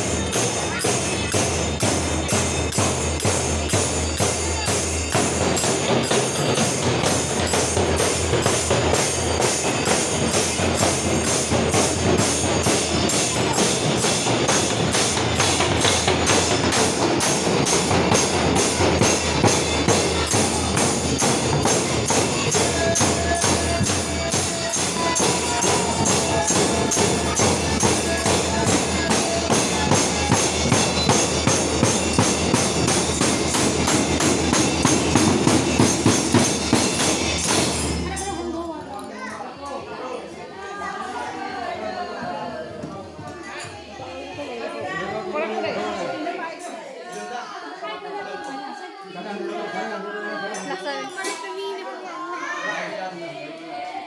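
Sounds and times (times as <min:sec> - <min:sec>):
barrel drums beaten fast: 0:00.0 - 0:38.3
crowd chatter: 0:00.0 - 0:54.0.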